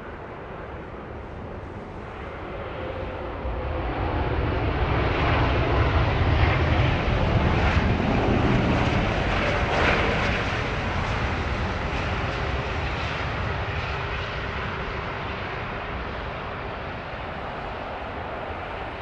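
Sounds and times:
jet engines rumbling: 0.0 - 19.0.

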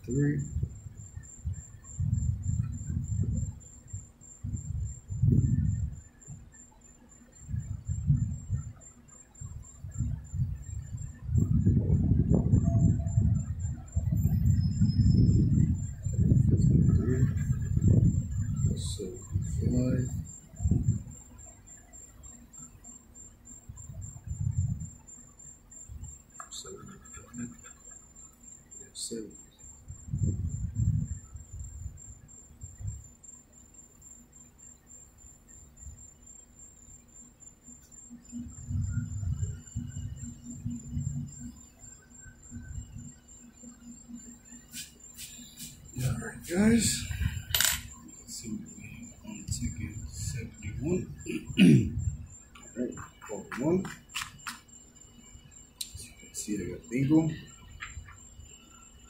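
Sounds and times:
faint high whine: 0.0 - 59.0.

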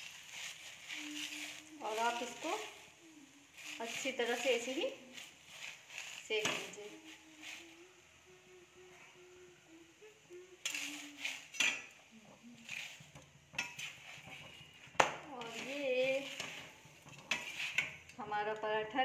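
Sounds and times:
spatula scraping griddle: 0.0 - 8.0, 10.6 - 18.2.

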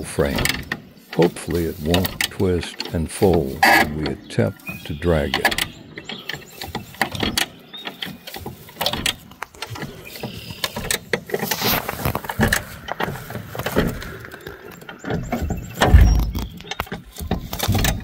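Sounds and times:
metal jack clicking and clanking: 0.0 - 18.0.

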